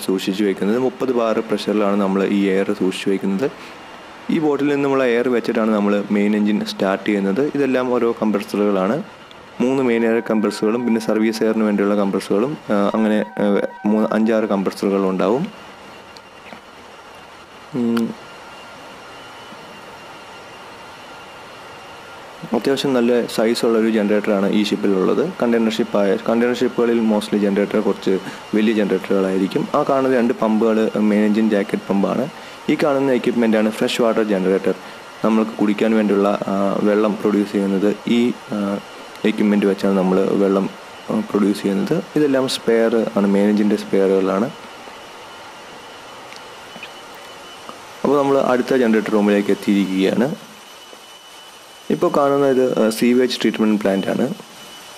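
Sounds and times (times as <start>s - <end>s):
engine room machinery drone: 0.0s - 54.9s
faint high whines: 0.0s - 54.9s
man's voice: 9.6s - 15.4s.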